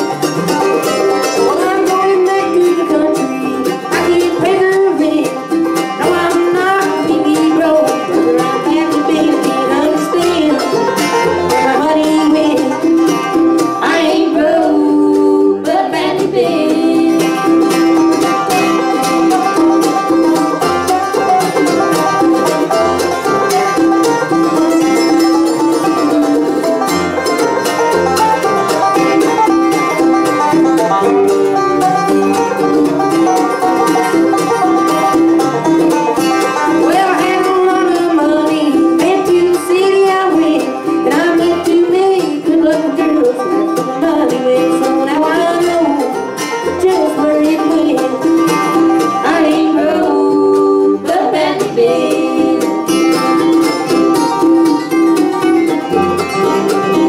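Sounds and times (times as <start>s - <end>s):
acoustic guitar: 0.0s - 57.0s
banjo: 0.0s - 57.0s
mandolin: 0.0s - 57.0s
upright bass: 0.0s - 57.0s.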